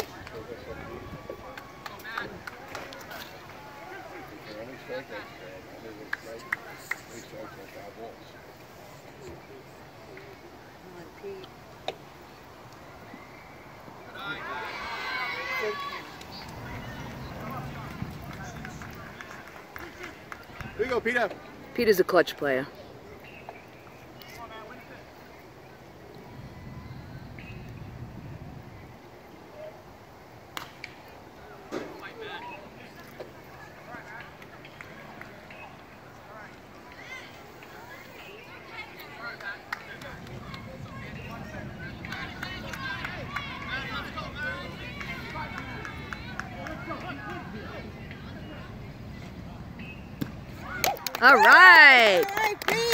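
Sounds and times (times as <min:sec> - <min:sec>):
faint distant voices: 0:00.0 - 0:52.9
spectators talking: 0:00.0 - 0:52.9.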